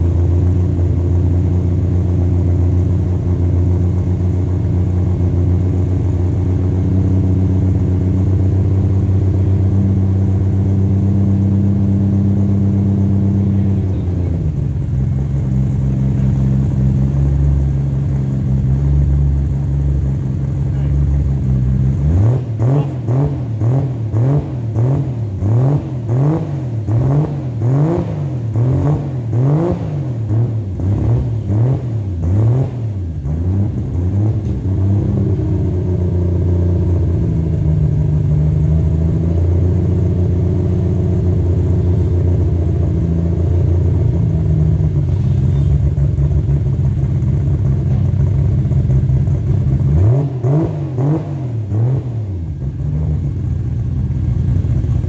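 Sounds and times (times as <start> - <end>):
car engine idling: 0.0 - 55.0
car engine revving: 0.0 - 55.0.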